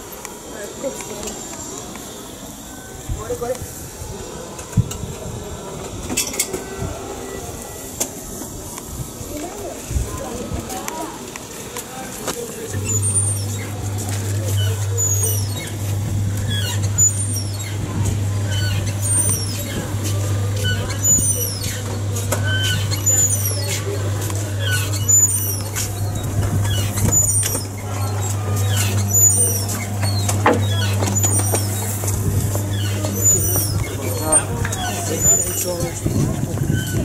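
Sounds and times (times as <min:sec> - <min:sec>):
people talking: 0:00.0 - 0:37.0
steady low hum: 0:12.7 - 0:37.0.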